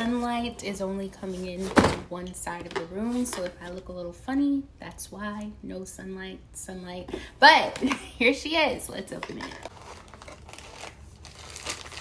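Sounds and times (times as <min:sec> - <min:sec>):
packing wrap rustling and crinkling: 0:09.7 - 0:12.0.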